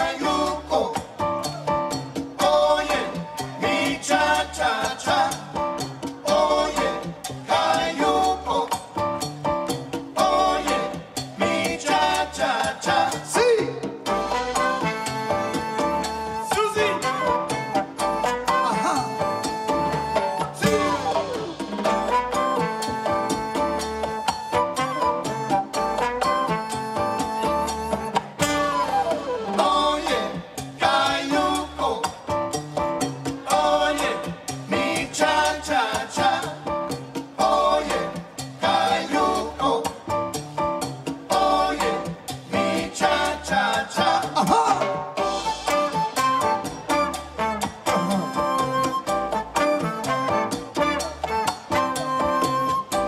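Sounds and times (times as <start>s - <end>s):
congas and timbales: 0.0s - 53.0s
latin jazz band: 0.0s - 53.0s
horn section: 14.1s - 29.3s, 44.9s - 53.0s.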